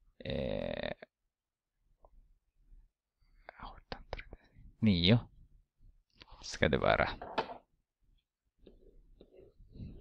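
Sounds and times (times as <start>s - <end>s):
person whispering: 3.4s - 4.5s.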